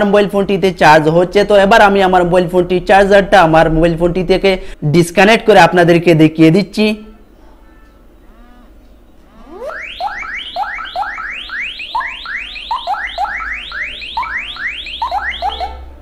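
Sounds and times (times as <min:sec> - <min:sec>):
phone alarm electronic sweeps: 0:09.3 - 0:15.9.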